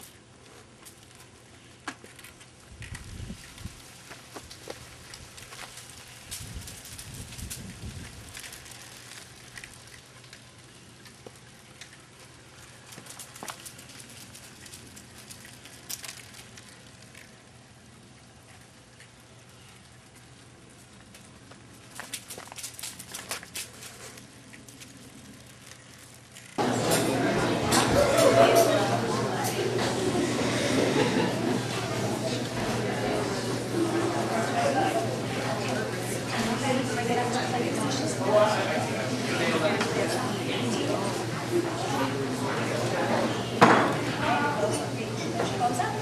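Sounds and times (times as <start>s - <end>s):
bicycle tyres crunching on grit: 0.0s - 26.6s.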